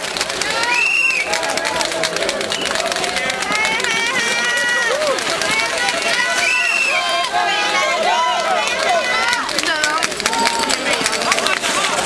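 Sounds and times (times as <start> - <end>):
spectators shouting and cheering: 0.0 - 12.0.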